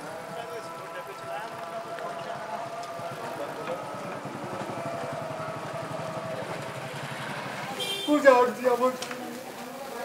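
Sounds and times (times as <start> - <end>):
engine idling: 0.0 - 8.1.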